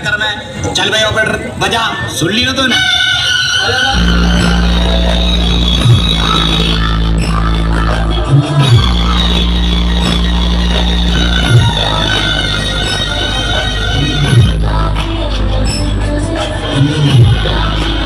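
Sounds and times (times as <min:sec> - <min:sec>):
loud dance music with heavy bass: 0:03.1 - 0:18.0.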